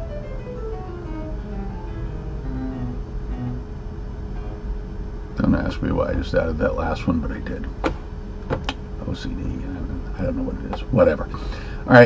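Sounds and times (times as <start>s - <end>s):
piano notes: 0.0s - 5.4s.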